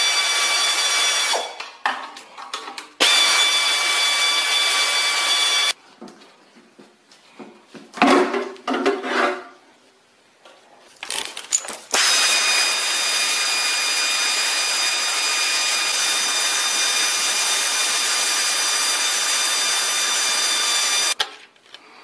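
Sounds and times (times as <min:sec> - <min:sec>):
power tool whining: 0:00.0 - 0:01.5, 0:03.0 - 0:05.8, 0:11.9 - 0:21.2.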